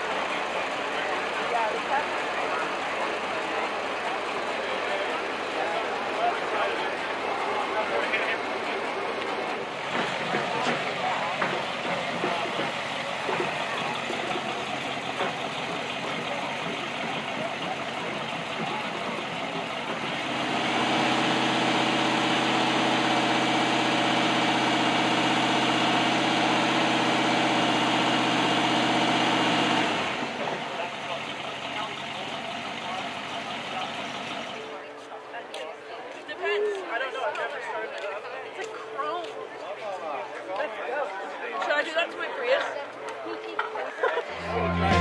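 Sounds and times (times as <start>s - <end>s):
car engine idling: 0.0s - 34.8s
crowd chatter: 0.0s - 45.0s.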